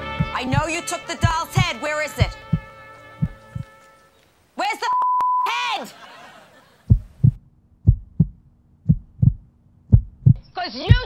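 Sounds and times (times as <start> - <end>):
heartbeat thumps: 0.0 - 3.7, 6.8 - 11.0
person speaking: 0.2 - 2.6.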